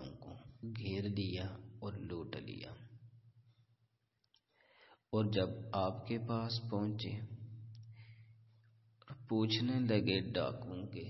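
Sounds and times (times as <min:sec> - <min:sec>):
low recording hum: 0:00.0 - 0:03.0, 0:04.7 - 0:11.0.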